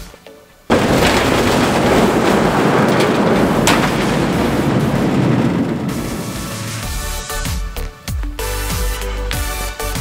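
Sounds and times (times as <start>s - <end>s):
steel sliding door rumbling: 0.7s - 8.4s.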